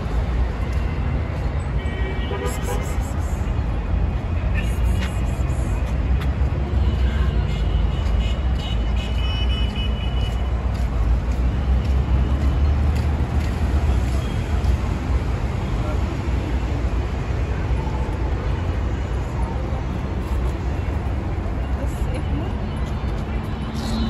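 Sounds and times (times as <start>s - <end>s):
low rumble of traffic: 0.0s - 24.0s.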